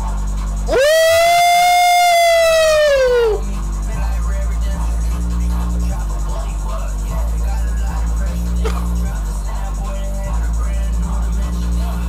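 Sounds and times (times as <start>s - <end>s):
man shouting high ooh: 0.7s - 3.4s.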